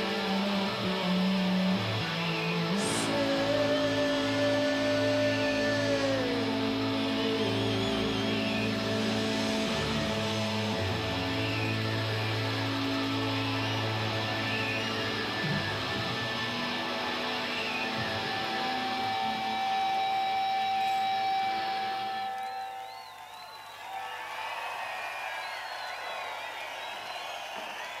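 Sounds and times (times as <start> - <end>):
electric guitar and bass ringing: 0.0 - 22.8
crowd cheering and whistling: 0.0 - 28.0.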